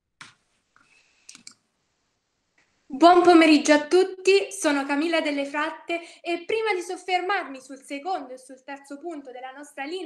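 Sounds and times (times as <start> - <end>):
faint computer clicks: 0.2 - 1.6.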